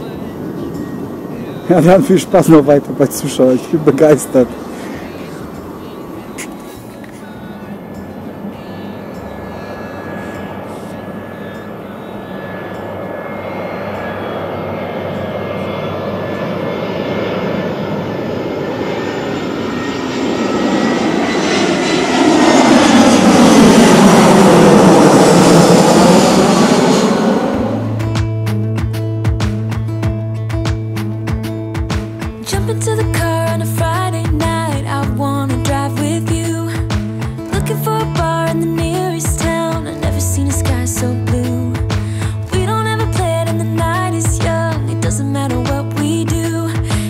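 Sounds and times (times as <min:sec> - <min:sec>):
jet airliner passing overhead: 0:00.0 - 0:47.0
music: 0:04.7 - 0:15.2, 0:27.6 - 0:47.0.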